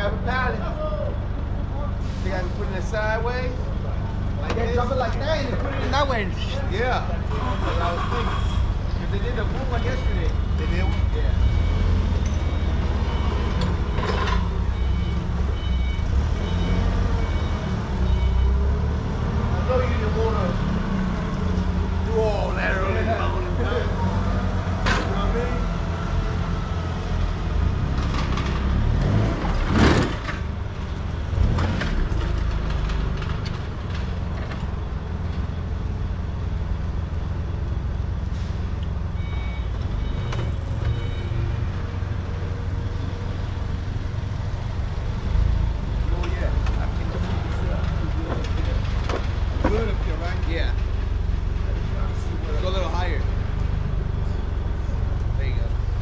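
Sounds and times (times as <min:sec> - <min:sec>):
forklift engine humming: 0:00.0 - 0:56.0
short beeps: 0:09.6 - 0:18.8, 0:39.2 - 0:41.8.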